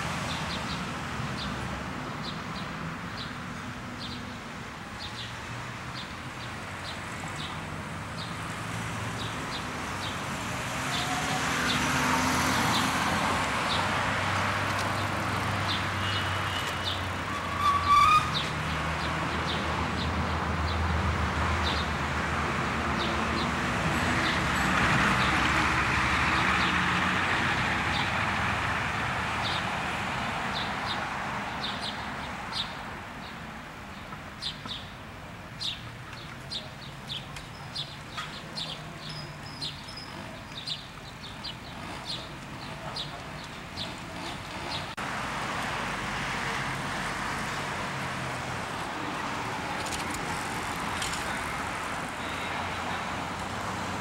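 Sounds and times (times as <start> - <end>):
cars driving past: 5.3 - 32.7
small birds chirping: 35.6 - 45.0.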